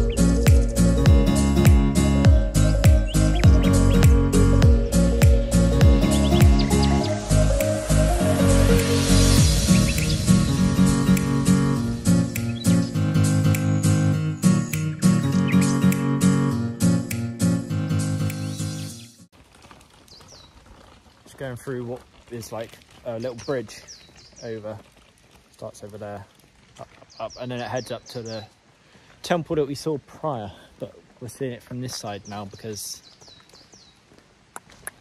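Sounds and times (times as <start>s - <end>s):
background music: 0.0s - 19.3s
small bird whistling song: 4.7s - 8.2s, 8.8s - 10.6s, 12.2s - 16.0s, 18.2s - 19.2s
sharp clicks: 11.1s - 16.2s.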